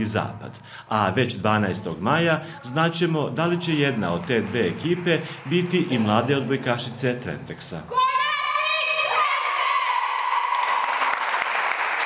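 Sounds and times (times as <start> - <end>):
women clapping hands: 3.8 - 6.5, 10.2 - 12.0.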